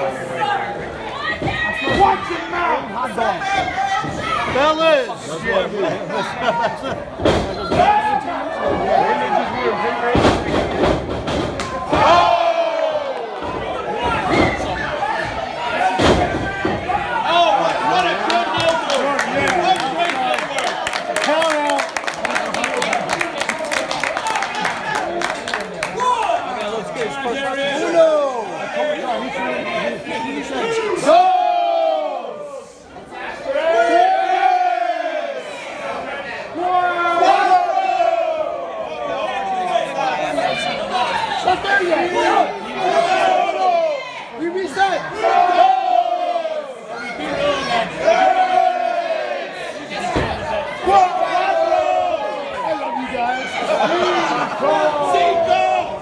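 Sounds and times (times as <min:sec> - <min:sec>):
crowd voices: 0:00.0 - 0:56.0.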